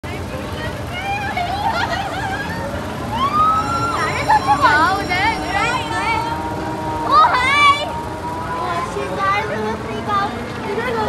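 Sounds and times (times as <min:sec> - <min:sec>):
riders shouting and screaming: 0:00.1 - 0:11.0
long high scream: 0:03.0 - 0:09.0.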